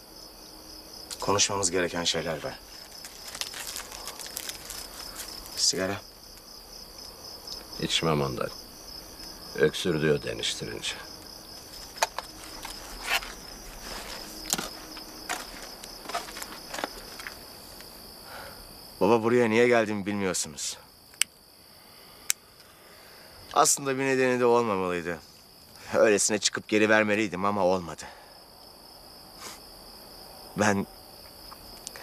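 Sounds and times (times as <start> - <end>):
crickets chirping: 0.0 - 32.0.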